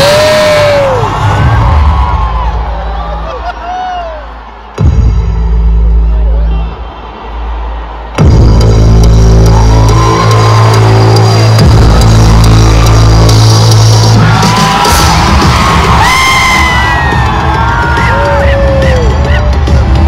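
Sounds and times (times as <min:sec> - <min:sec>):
high whoops: 0:00.0 - 0:04.3, 0:14.3 - 0:19.8
deep bass drone: 0:08.2 - 0:16.3
pulsing beat: 0:08.2 - 0:20.0.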